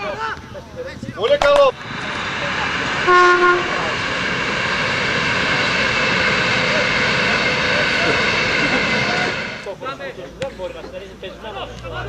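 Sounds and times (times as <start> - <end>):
diesel train passing: 0.0 - 12.0.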